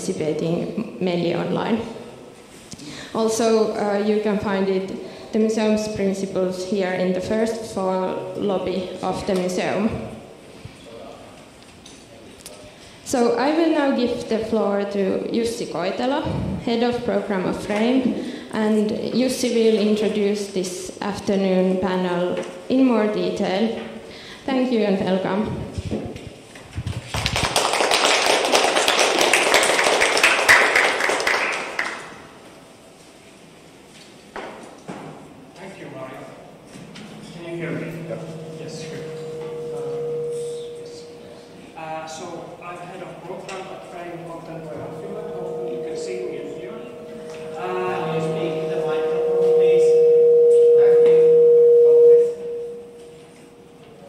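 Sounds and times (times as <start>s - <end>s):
audience applauding: 27.1s - 32.2s
microphone feedback tone: 36.7s - 42.2s, 44.2s - 54.0s.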